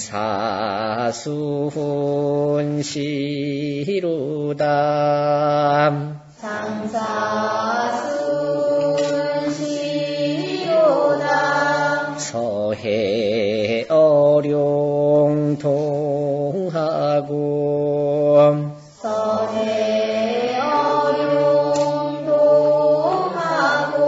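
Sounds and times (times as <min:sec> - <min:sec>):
person chanting a poem: 0:00.0 - 0:24.0.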